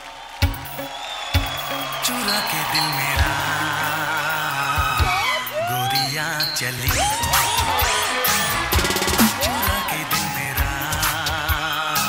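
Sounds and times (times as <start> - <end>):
dance music: 0.4 - 12.0.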